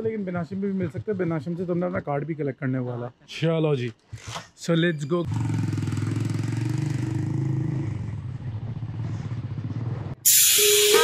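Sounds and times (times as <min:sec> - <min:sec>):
motorcycle engine running: 0:05.3 - 0:10.3
loud music: 0:10.3 - 0:11.0.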